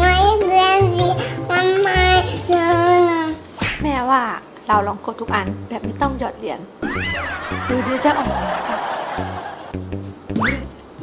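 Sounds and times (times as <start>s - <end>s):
girl talking in sing-song tones: 0.0s - 6.3s.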